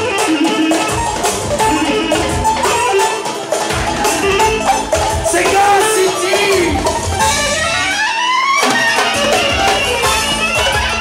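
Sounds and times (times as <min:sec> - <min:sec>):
clarinet melody: 0:00.0 - 0:11.0
steady drum beat: 0:00.0 - 0:11.0.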